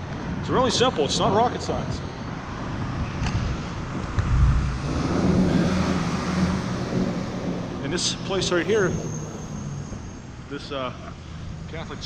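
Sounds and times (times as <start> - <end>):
wind on microphone: 1.9 - 10.5
vehicle engine drone passing: 3.0 - 12.0.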